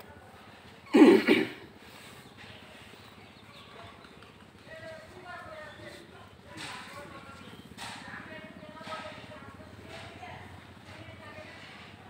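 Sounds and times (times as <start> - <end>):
faint talking voices: 0.0 - 12.0.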